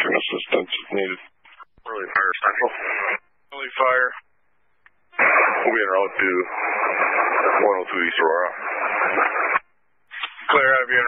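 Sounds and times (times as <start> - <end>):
voice over two-way radio: 0.0 - 4.3, 5.2 - 9.6, 10.2 - 11.0.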